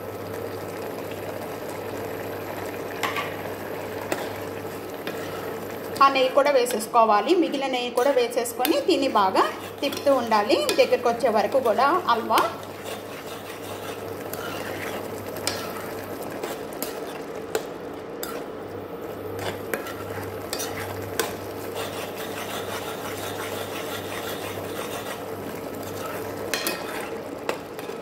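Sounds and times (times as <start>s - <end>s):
metal ladle scraping a pan: 5.0s - 5.6s, 6.6s - 17.2s, 18.2s - 18.5s, 19.4s - 28.0s.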